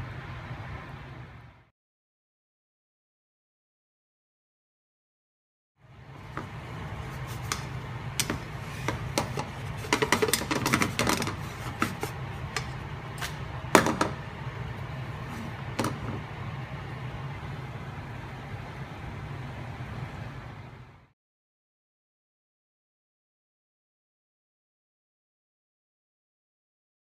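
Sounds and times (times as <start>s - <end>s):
steady low hum: 0.0s - 1.7s, 5.8s - 21.1s.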